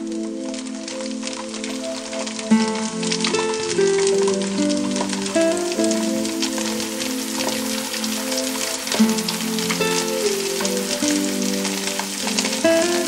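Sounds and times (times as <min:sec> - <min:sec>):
fish deep-frying in oil: 0:00.0 - 0:13.0
instrumental music with plucked notes: 0:00.0 - 0:13.0.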